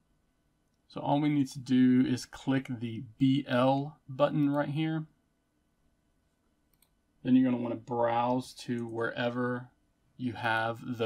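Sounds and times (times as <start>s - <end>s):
faint computer mouse clicks: 6.7s - 7.0s.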